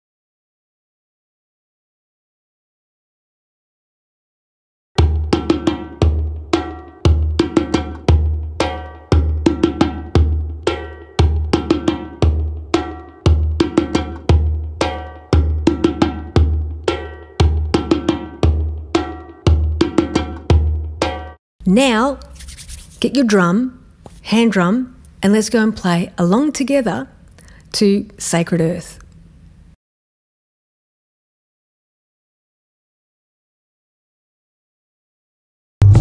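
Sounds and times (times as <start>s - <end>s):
djembe played by hand: 5.0s - 21.4s.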